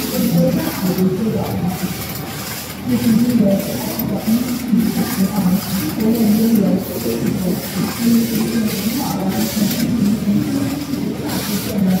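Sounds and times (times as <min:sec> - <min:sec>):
knitting machine running: 0:00.0 - 0:12.0.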